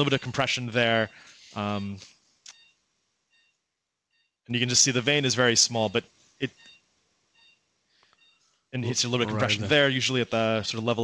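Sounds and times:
short electronic beeps: 2.5s - 4.4s, 5.8s - 8.6s.

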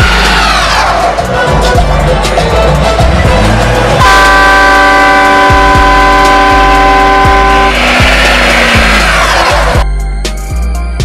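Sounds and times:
music with heavy bass beat: 0.0s - 11.0s
air horn blast: 3.4s - 9.8s.

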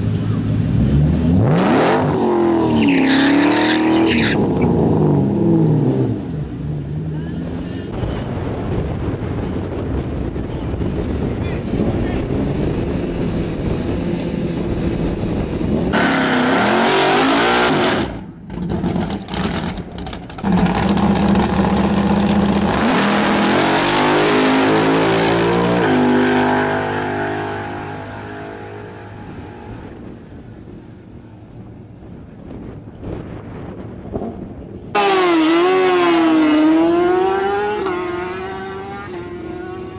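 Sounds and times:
race car engine revving: 0.1s - 7.9s, 12.2s - 30.0s, 35.0s - 39.9s.

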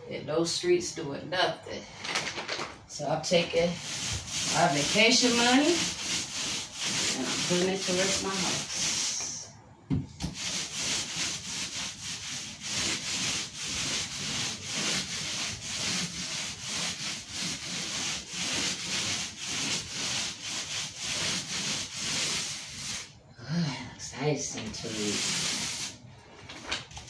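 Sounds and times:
paint roller swishing: 3.0s - 9.4s, 10.3s - 23.2s, 24.4s - 26.1s.

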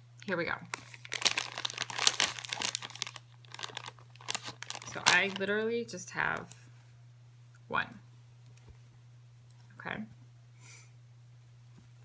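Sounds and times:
steady low hum: 0.0s - 12.0s
makeup wipe being unfolded: 0.8s - 5.4s.

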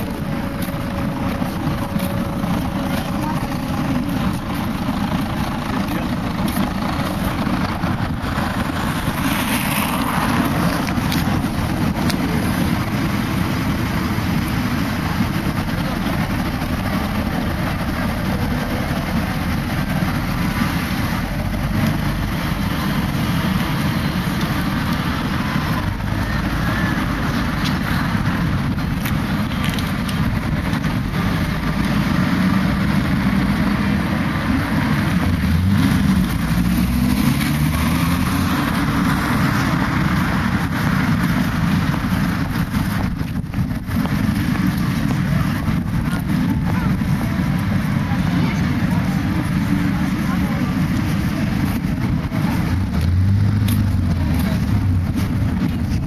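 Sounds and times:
engine speeding up: 0.0s - 56.0s
road traffic rumble: 0.0s - 56.0s.

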